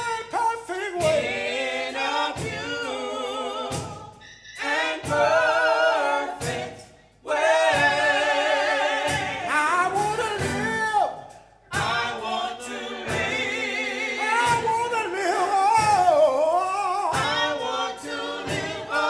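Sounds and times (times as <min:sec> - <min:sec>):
group singing gospel song: 0:00.0 - 0:19.0.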